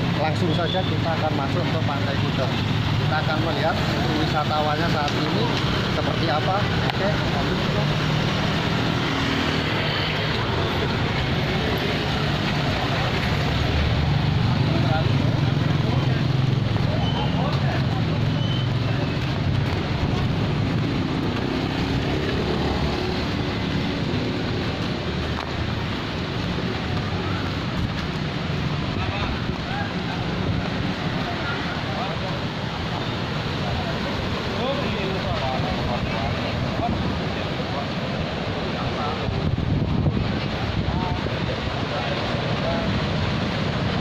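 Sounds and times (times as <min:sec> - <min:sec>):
passing cars and motorbikes: 0:00.0 - 0:44.0
wind buffeting microphone: 0:19.1 - 0:22.2, 0:35.8 - 0:42.0.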